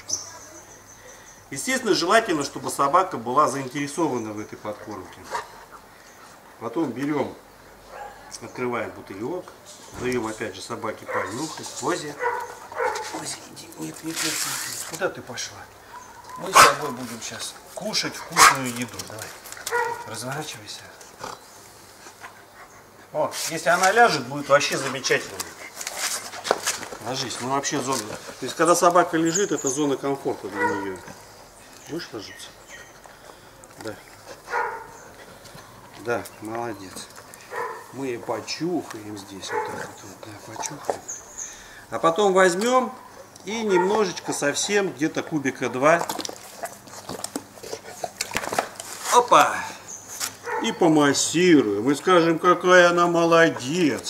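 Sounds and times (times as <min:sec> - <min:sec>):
dog fur rustling and clicks: 0:09.4 - 0:15.2, 0:16.3 - 0:21.2, 0:23.3 - 0:32.0, 0:42.4 - 0:50.7
dog snuffling: 0:11.0 - 0:20.4, 0:32.8 - 0:41.8.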